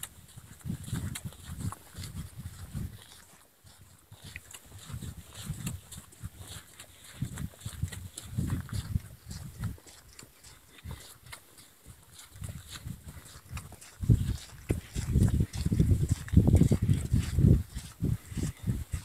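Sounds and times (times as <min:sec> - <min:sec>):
footsteps on gravel road: 0:00.0 - 0:19.0.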